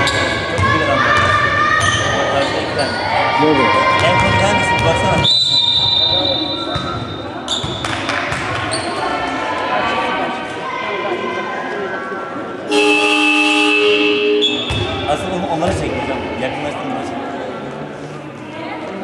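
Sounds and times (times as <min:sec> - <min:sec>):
basketball bouncing on court: 0:00.0 - 0:02.1, 0:06.7 - 0:08.9, 0:14.5 - 0:15.9
high whistle tone: 0:05.2 - 0:06.8, 0:12.7 - 0:14.9
horn sounding: 0:12.7 - 0:15.0.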